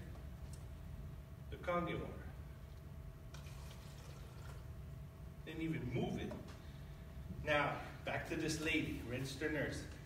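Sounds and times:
water trickling into a cup: 3.3s - 4.8s.

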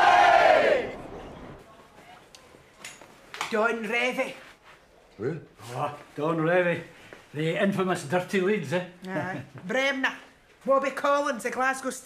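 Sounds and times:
crowd cheering: 0.0s - 1.6s.

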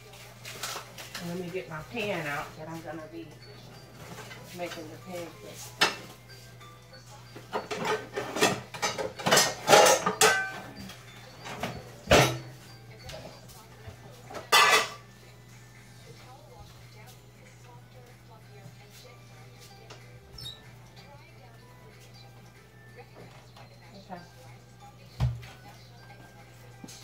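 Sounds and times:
metal pots and pans clattering: 7.5s - 12.6s, 14.3s - 15.1s.

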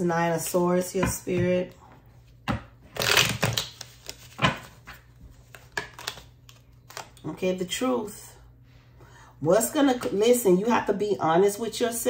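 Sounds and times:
cards rustling: 3.0s - 7.2s.

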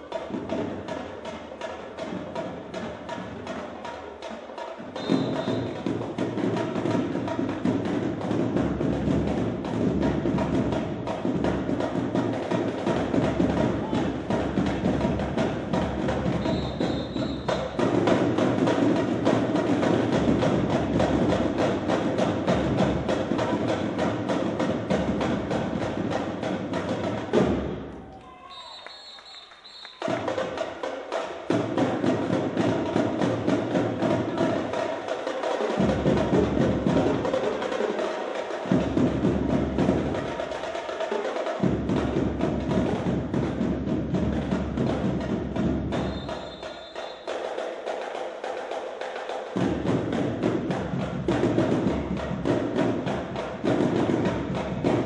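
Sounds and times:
marching drumline cadence: 0.0s - 55.0s
snare drums cadence: 5.0s - 5.9s, 16.4s - 17.8s, 28.5s - 30.5s, 46.0s - 47.5s.

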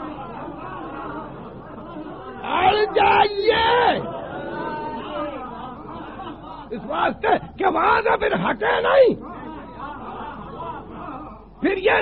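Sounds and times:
faint murmur of voices: 0.0s - 12.0s.

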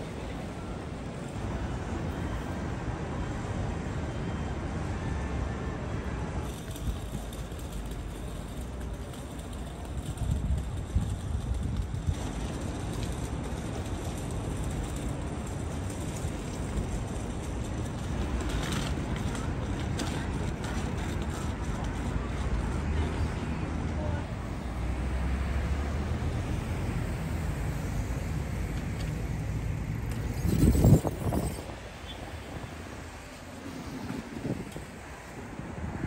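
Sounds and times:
road traffic rumble: 0.0s - 36.0s
wind buffeting microphone: 30.2s - 32.7s.

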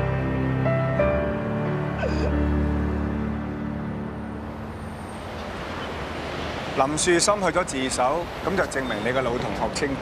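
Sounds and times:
outdoor traffic noise: 0.0s - 10.0s.

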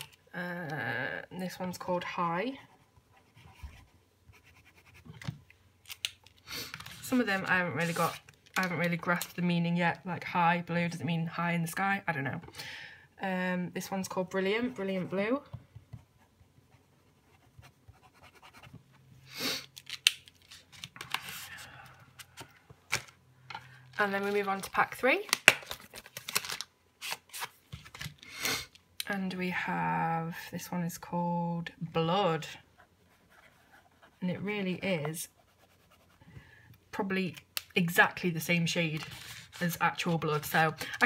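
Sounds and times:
marker pen scratching on paper: 2.6s - 5.2s, 16.0s - 18.9s, 32.8s - 34.3s, 35.2s - 36.2s
person sniffing: 19.2s - 19.7s.

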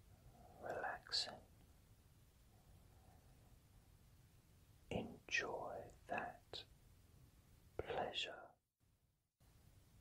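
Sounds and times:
man whispering: 0.4s - 1.5s, 4.9s - 6.7s, 7.8s - 8.6s.

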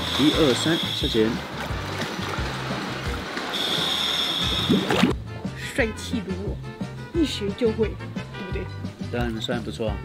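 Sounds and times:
pool water sloshing and bubbling: 0.0s - 5.2s
background music: 0.0s - 10.0s.

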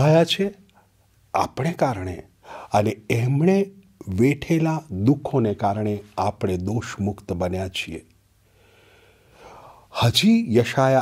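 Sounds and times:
man speaking: 0.0s - 0.6s, 1.3s - 8.1s, 9.9s - 11.0s
short in-breath: 8.4s - 9.9s.

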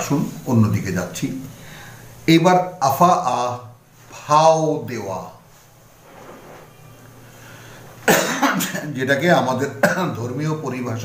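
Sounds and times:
man coughing: 8.0s - 8.9s, 9.8s - 10.2s.

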